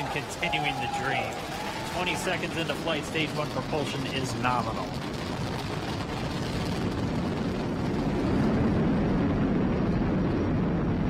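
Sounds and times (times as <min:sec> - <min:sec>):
rocket engines rumbling: 0:00.0 - 0:11.0.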